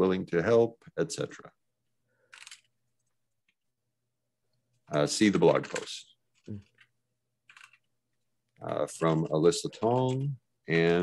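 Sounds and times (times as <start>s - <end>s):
computer keyboard typing: 2.3s - 2.7s, 5.4s - 7.9s.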